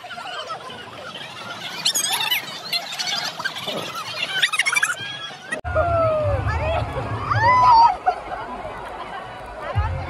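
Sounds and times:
people shrieking excitedly: 0.0s - 8.2s
water slide rumble: 0.0s - 10.0s.

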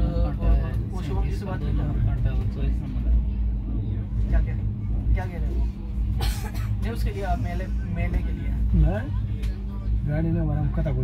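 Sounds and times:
train coach rumbling on track: 0.0s - 11.0s.

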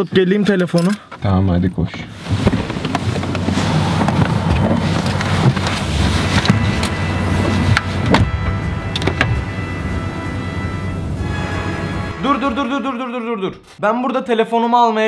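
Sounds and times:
person climbing out of car: 2.1s - 9.6s
car door opening and shutting: 2.2s - 11.0s
background music: 6.3s - 13.3s.

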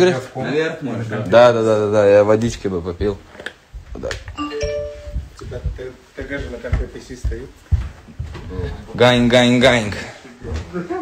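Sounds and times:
electronic chime rising notes: 4.4s - 5.4s.

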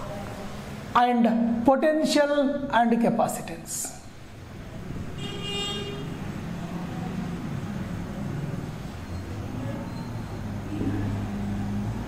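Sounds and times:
road traffic: 0.0s - 1.8s, 3.6s - 12.0s.

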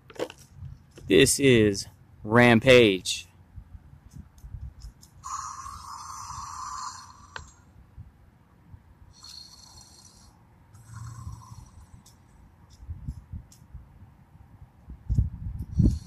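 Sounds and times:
electronic toy creature sounds: 5.2s - 7.6s.

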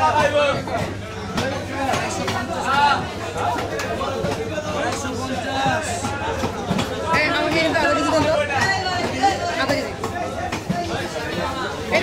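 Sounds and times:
market chatter: 0.0s - 12.0s.

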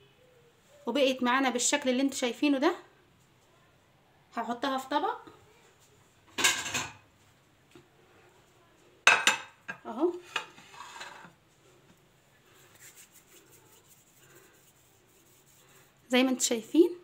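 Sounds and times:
plate clattering and clinking: 6.4s - 7.0s, 9.0s - 9.6s
light tapping and rubbing: 10.2s - 16.0s.

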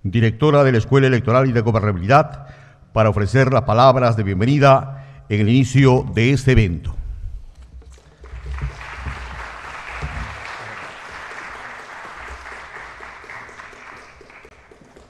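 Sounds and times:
audience applauding: 8.0s - 15.0s.

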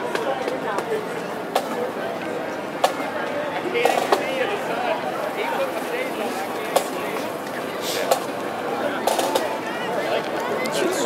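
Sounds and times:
people talking outdoors: 0.0s - 11.0s.

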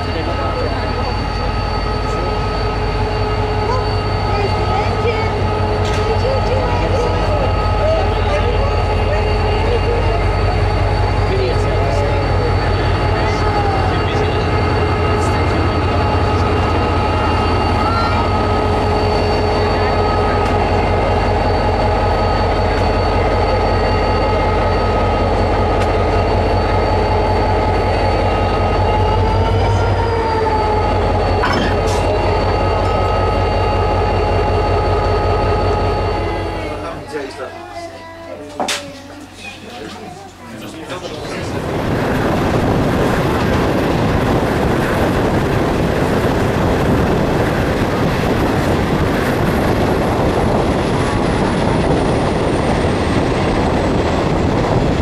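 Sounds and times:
diesel locomotive engine rumble: 0.0s - 55.0s
high engine whine: 0.0s - 55.0s.

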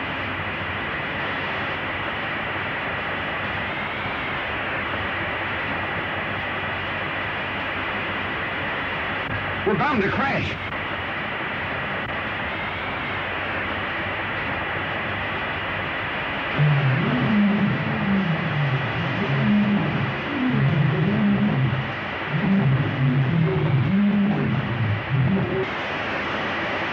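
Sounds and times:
faint high whine: 0.0s - 26.9s
film soundtrack hiss: 0.0s - 26.9s.

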